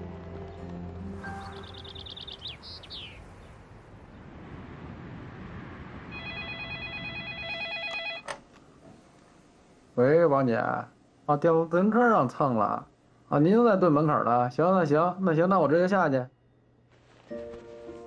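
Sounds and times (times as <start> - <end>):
background music: 0.0 - 2.6, 17.2 - 18.0
bird chirps: 1.2 - 3.6
telephone ringing: 6.2 - 8.3.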